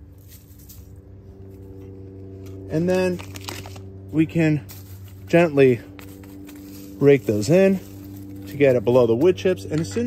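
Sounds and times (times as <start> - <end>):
granules pattering on mulch: 0.0 - 10.0
steady low hum: 0.0 - 10.0.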